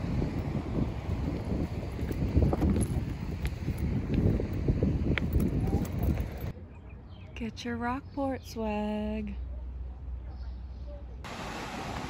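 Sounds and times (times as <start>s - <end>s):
wind buffeting microphone: 0.0s - 6.5s.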